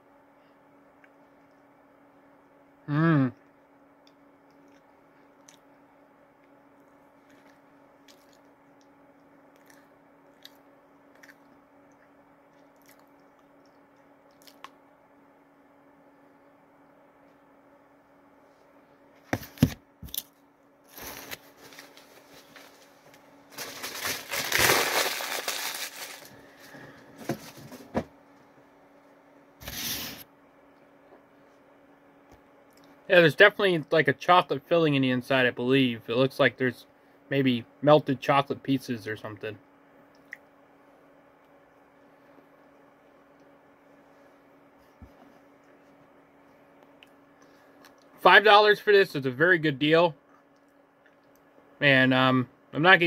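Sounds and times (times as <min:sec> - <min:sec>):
faint steady hum: 0:00.0 - 0:53.0
paper rustling and crinkling: 0:20.9 - 0:28.0.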